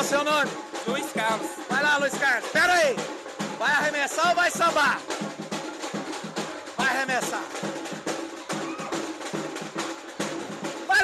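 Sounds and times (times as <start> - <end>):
samba hand drums beat: 0.0 - 11.0.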